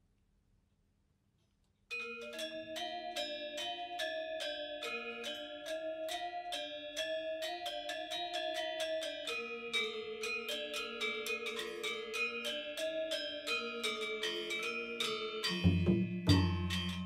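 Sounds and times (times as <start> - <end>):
gamelan metallophones ringing: 1.9 - 17.0.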